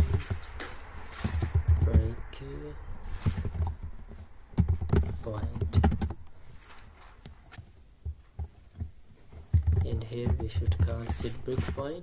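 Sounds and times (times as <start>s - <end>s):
keyboard typing clicks: 0.0s - 2.1s, 4.5s - 6.3s, 9.5s - 12.0s.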